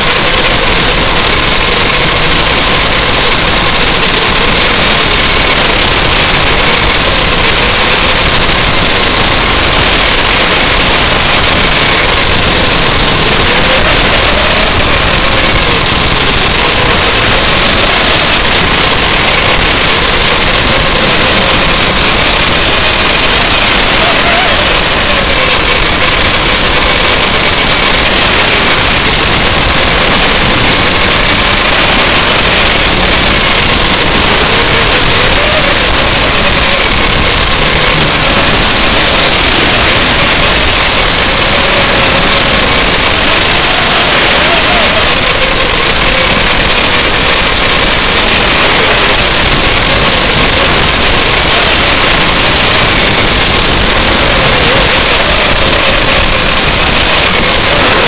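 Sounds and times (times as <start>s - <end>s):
loud steady radio hiss: 0.0s - 58.0s
thin high whine: 0.0s - 58.0s.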